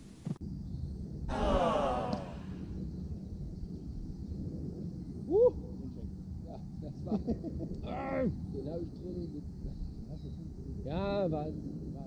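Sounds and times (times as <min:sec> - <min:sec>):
low outdoor background: 0:00.0 - 0:12.0
person's breathy exclamation: 0:01.3 - 0:02.6.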